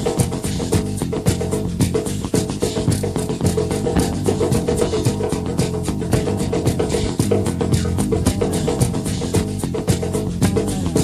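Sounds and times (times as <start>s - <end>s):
drum kit fast beat: 0.0s - 11.0s.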